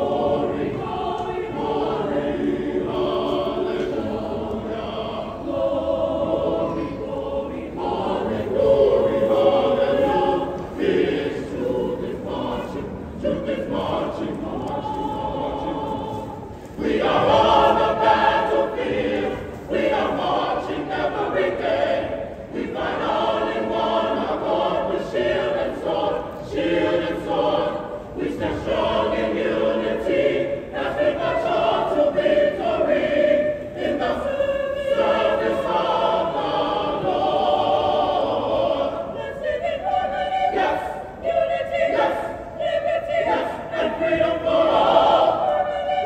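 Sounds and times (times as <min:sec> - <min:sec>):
mixed choir singing: 0:00.0 - 0:46.0.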